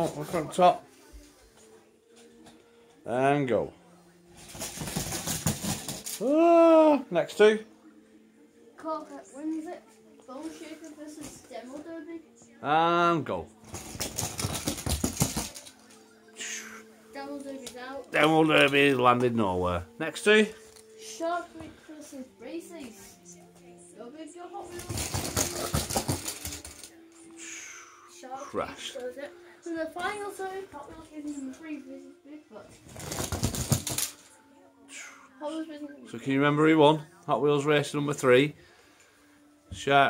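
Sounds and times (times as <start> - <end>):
toy trucks clattering: 4.4 - 6.2, 13.7 - 15.9, 24.7 - 26.9, 32.9 - 34.3.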